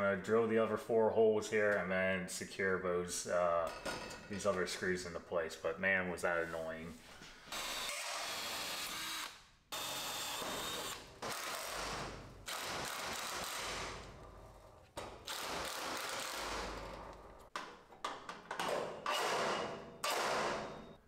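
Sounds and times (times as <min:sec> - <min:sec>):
power drill drilling into metal: 0:07.6 - 0:14.0.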